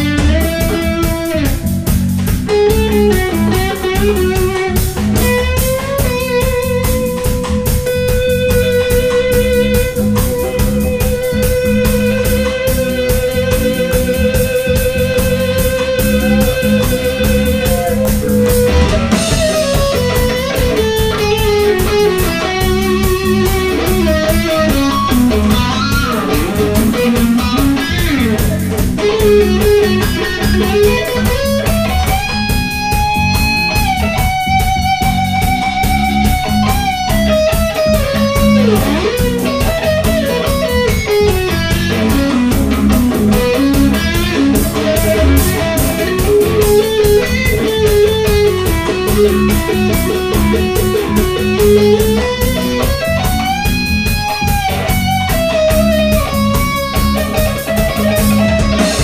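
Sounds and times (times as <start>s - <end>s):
drum kit: 0.0s - 59.0s
electric bass: 0.0s - 59.0s
electric guitar lead: 0.0s - 59.0s.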